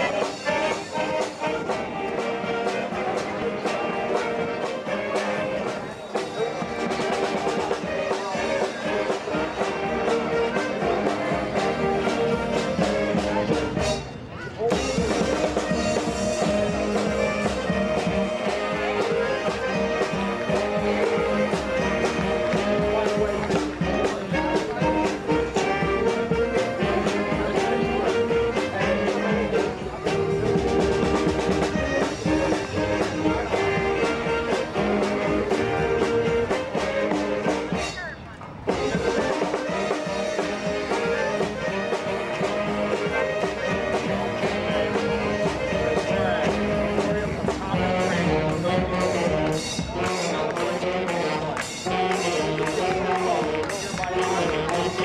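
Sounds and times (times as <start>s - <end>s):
accordions: 0.0s - 38.0s, 38.7s - 55.0s
saxophones: 0.0s - 55.0s.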